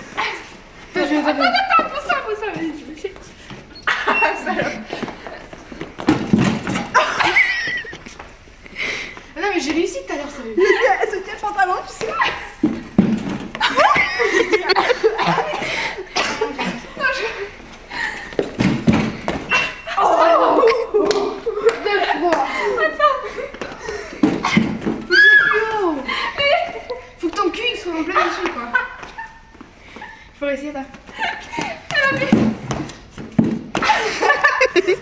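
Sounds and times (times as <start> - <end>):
dull thuds in hallway: 18.4 - 19.5
person squealing: 25.1 - 25.9.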